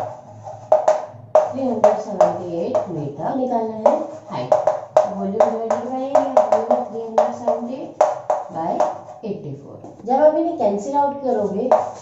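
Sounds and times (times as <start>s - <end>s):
chalk tapping and scraping: 0.0s - 3.0s, 3.8s - 9.2s, 11.6s - 12.0s.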